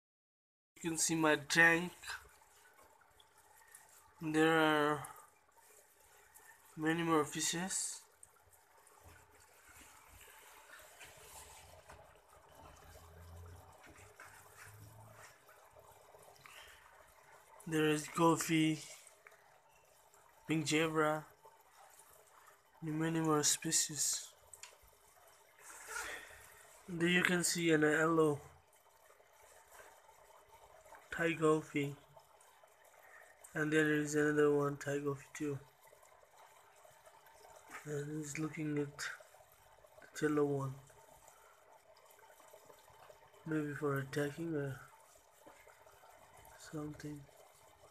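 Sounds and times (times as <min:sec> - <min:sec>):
faint trickling water: 0:00.8 - 0:47.9.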